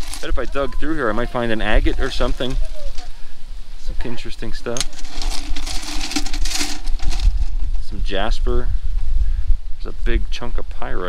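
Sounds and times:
rocks clattering in metal pail: 0:00.0 - 0:00.8, 0:04.7 - 0:07.9.

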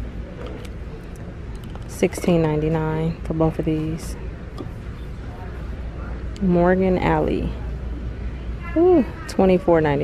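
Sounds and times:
low shop background rumble: 0:00.0 - 0:10.0.

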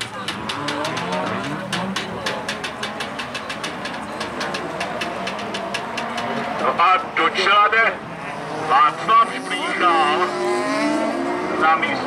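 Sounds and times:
race car engines revving: 0:00.0 - 0:12.0.

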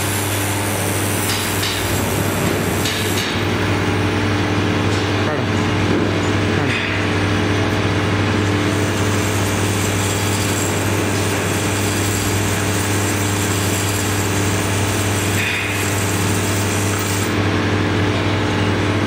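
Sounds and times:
vibratory feeder humming: 0:00.0 - 0:19.0.

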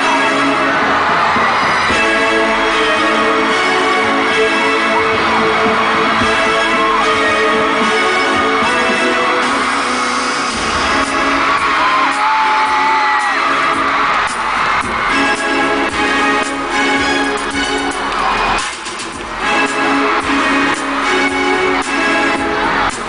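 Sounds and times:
concert intro music: 0:00.0 - 0:23.0
fans screaming: 0:00.0 - 0:23.0.

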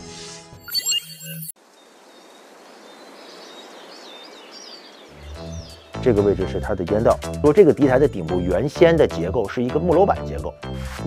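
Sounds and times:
birds chirping: 0:01.6 - 0:08.6.

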